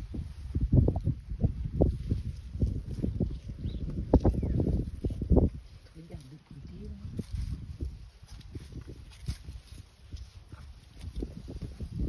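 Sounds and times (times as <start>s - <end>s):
elephant stepping through brush: 1.8s - 12.0s.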